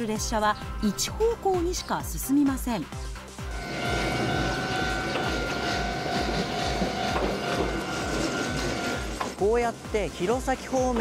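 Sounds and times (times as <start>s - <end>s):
high electric whine: 3.4s - 10.4s
train wheels rumbling on rail: 3.5s - 11.0s.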